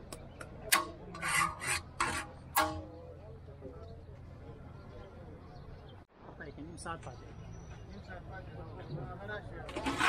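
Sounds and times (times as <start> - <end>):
metal rasping scrapes: 0.7 - 2.9, 9.7 - 10.0.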